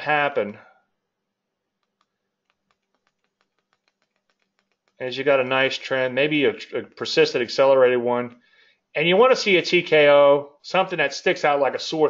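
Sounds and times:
computer mouse clicks: 1.8s - 5.0s.

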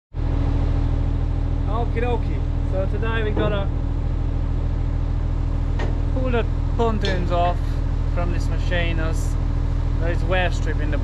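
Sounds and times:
engine idling: 0.2s - 11.0s
man speaking: 1.7s - 3.8s, 10.0s - 11.0s.

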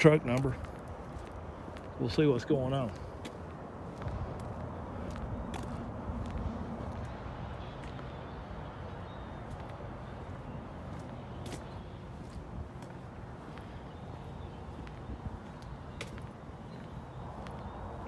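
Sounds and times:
footsteps on asphalt: 0.0s - 18.0s.

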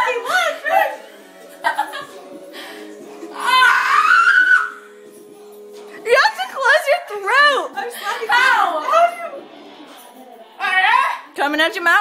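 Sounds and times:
woman squealing: 3.3s - 4.8s.

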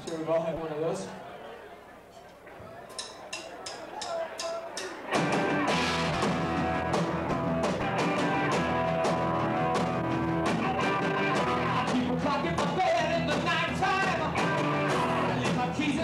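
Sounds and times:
live rock band playing: 5.0s - 16.0s.

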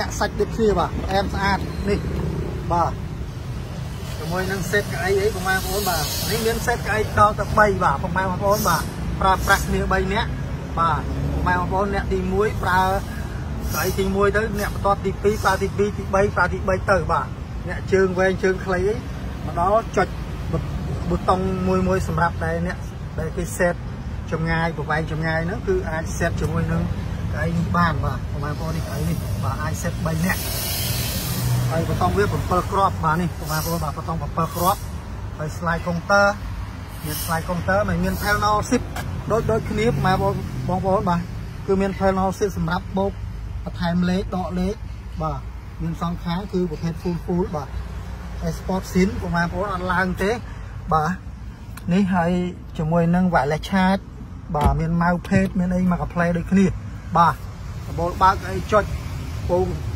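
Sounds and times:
hiss: 4.9s - 7.6s, 12.9s - 15.8s, 30.0s - 31.7s, 33.2s - 35.1s, 36.8s - 38.7s
person talking: 48.4s - 59.9s.

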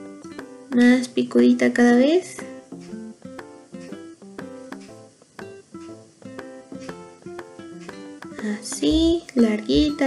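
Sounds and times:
plucked guitar-like notes: 0.0s - 1.2s, 2.2s - 10.0s.

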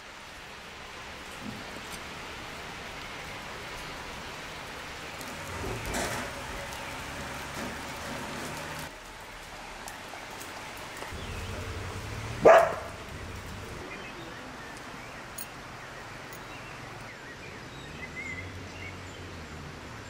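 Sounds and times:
steady rain falling: 0.0s - 20.0s
dog barking: 12.4s - 13.0s.

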